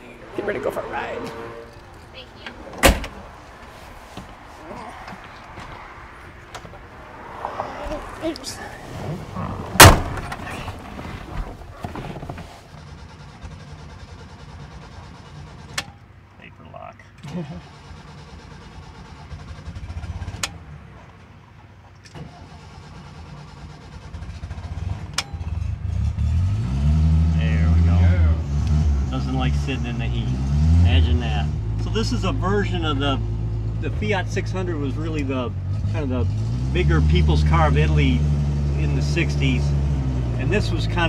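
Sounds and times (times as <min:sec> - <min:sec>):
car engine starting and revving: 0:00.0 - 0:16.0, 0:17.2 - 0:41.0
loud sharp thud: 0:02.8 - 0:03.2, 0:09.8 - 0:10.6.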